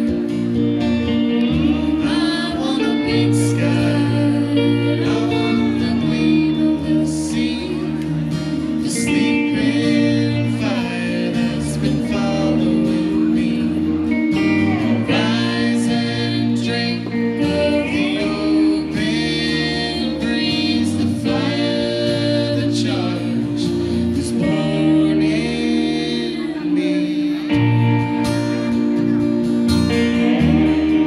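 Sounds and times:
electric guitar playing: 0.0 - 31.0
strummed acoustic guitars: 0.0 - 31.0
man and woman singing: 1.4 - 28.1.

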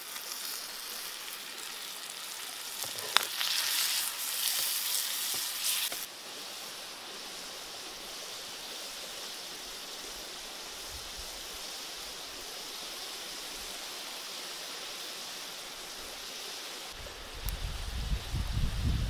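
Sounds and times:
food sizzling in a wok: 0.0 - 19.0.

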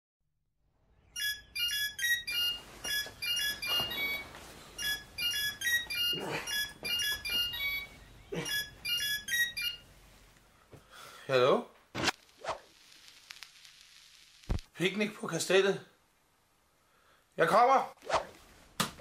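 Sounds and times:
phone ringtone melody: 1.0 - 10.0.

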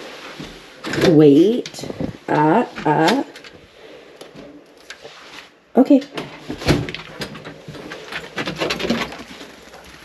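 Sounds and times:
clothing rustle: 0.0 - 10.0
footfalls on wooden porch: 6.2 - 10.0.

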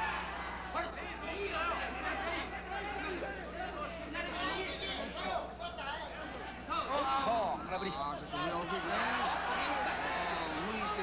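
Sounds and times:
crowd shouting and chattering: 0.0 - 11.0.

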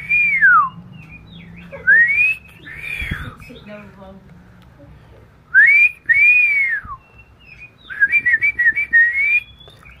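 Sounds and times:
bird singing whistles: 0.0 - 3.6, 5.5 - 10.0.

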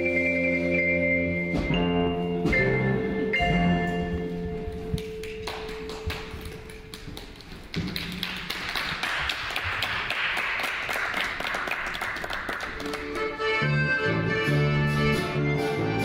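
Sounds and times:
small audience applause: 5.0 - 13.2.

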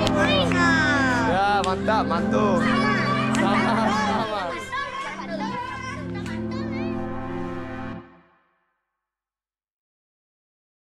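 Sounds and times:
children shouting and chattering: 0.0 - 7.5
background music with chords: 0.0 - 8.4.

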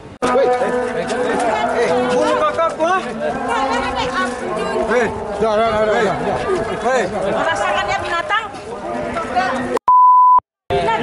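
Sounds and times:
censor bleep: 9.8 - 10.4.

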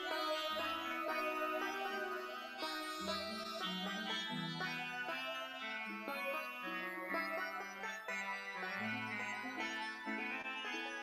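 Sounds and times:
slow plucked string instrument music: 0.0 - 11.0.

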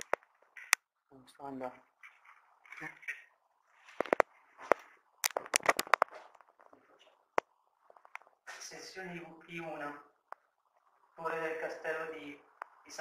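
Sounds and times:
device handling rustles: 3.8 - 6.8.

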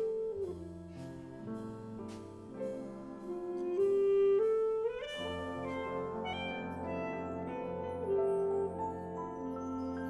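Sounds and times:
wind band playing: 0.0 - 9.2.

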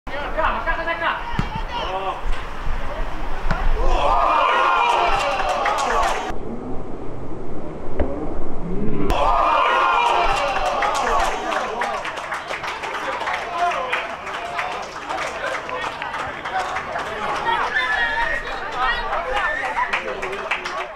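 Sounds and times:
football kick thud: 1.3 - 1.6
players shouting: 3.4 - 6.3, 9.1 - 20.9.

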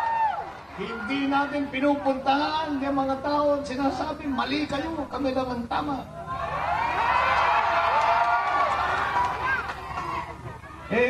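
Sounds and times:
crowd cheering and shouting: 0.0 - 3.0, 6.2 - 11.0.

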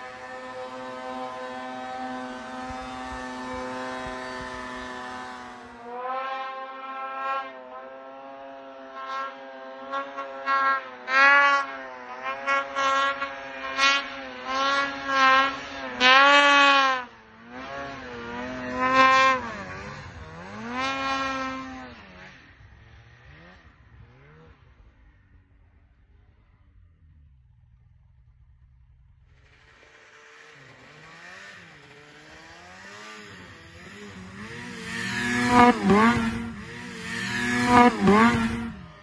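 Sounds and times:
snowmobile engine revving: 0.0 - 27.8, 29.2 - 39.0.

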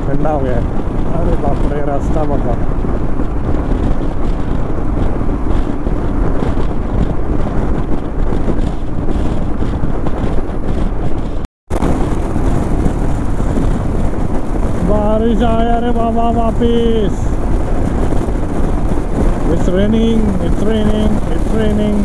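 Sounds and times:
motorcycle at highway speed: 0.0 - 22.0
wind rushing over microphone: 0.0 - 22.0.

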